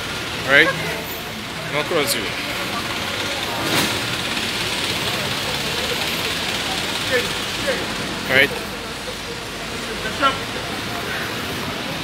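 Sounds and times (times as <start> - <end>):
vehicle engines rumbling: 0.0 - 12.0.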